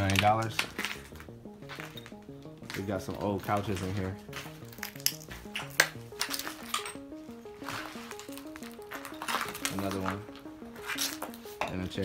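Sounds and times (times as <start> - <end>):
background music: 0.0 - 12.0
footsteps on broken glass: 0.0 - 12.0.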